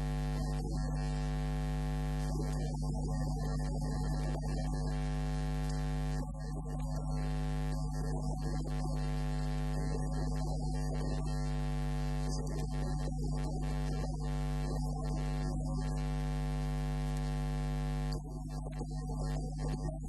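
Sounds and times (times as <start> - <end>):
electrical mains hum: 0.0 - 20.0.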